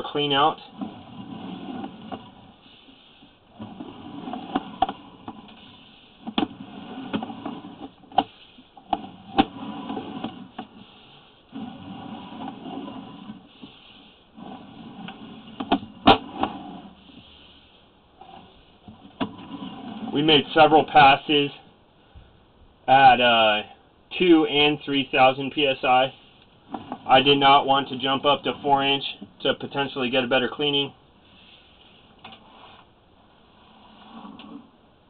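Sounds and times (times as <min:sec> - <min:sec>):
cable scraping and rattling in pipe: 0:00.0 - 0:21.5, 0:24.6 - 0:32.9, 0:33.5 - 0:34.7.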